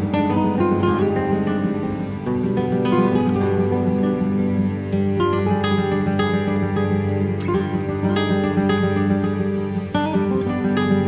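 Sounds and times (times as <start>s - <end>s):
acoustic guitars playing folk melody: 0.0s - 11.0s.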